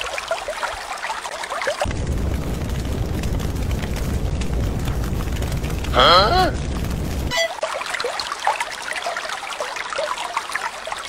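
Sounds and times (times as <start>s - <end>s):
water trickling and bubbling: 0.0s - 11.0s.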